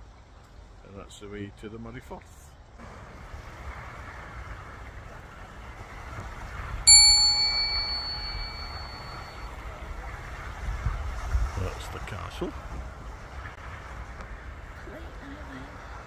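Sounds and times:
outdoor background hiss: 0.0s - 16.0s
bright bell ding: 6.9s - 9.5s.

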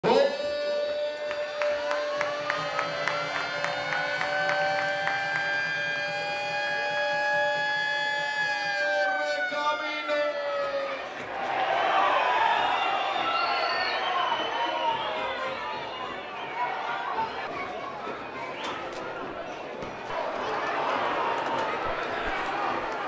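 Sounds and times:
stadium crowd: 0.0s - 23.0s
siren-like noisemaker tones: 0.1s - 11.2s.

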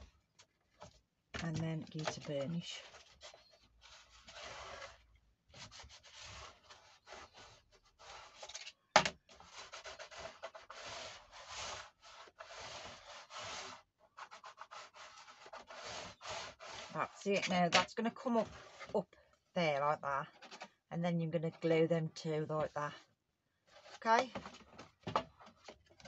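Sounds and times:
bone folder rubbing cardstock: 5.6s - 8.7s, 9.4s - 17.2s.

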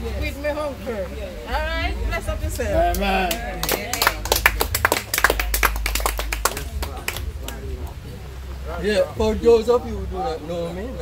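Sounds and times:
people clapping: 2.8s - 8.0s.

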